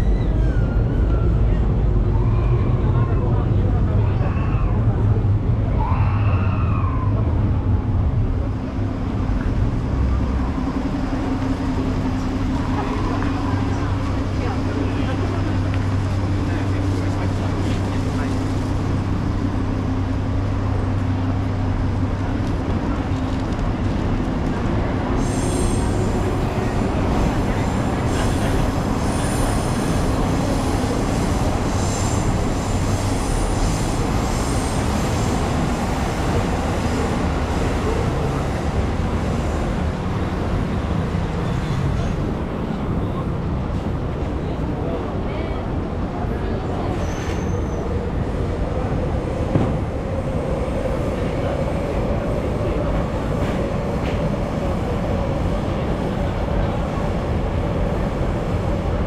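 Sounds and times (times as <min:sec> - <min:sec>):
city street noise: 0:00.0 - 0:59.0
passers-by talking: 0:00.0 - 0:59.0
train on elevated tracks: 0:00.0 - 0:59.0.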